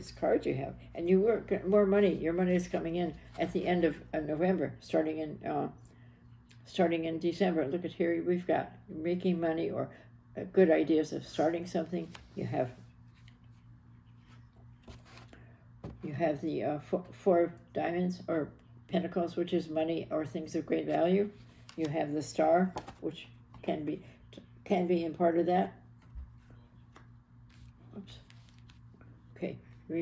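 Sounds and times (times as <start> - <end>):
steady low hum: 0.0 - 30.0
cards laid on cloth table: 26.4 - 29.2.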